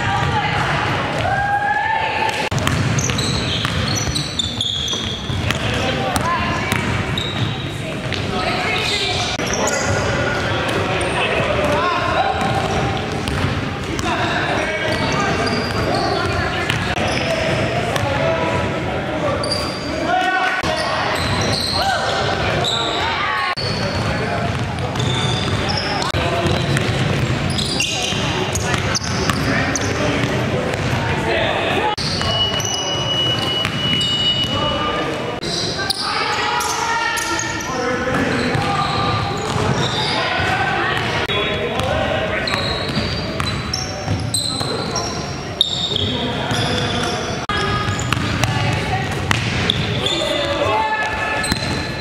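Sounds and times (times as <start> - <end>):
sneakers squeaking: 2.3 - 52.0
basketball bouncing on hardwood: 2.6 - 3.9.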